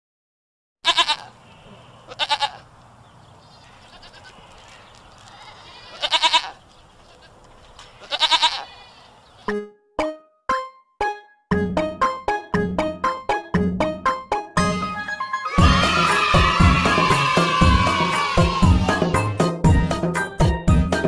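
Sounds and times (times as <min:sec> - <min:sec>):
goat kids bleating: 0:00.8 - 0:02.7, 0:03.6 - 0:09.2
music: 0:09.5 - 0:21.0.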